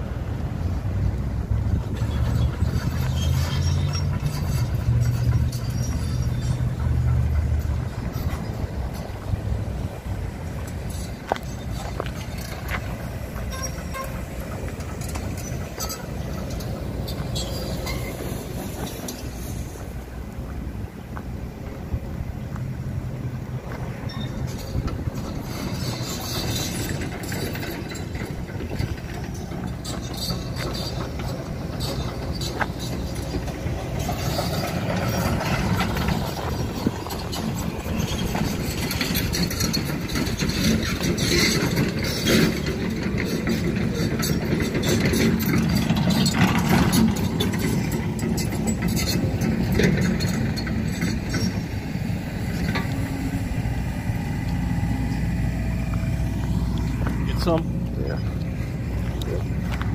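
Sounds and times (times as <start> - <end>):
low engine rumble: 0.0 - 59.9
knocks and clatter: 1.7 - 20.0, 23.6 - 59.9.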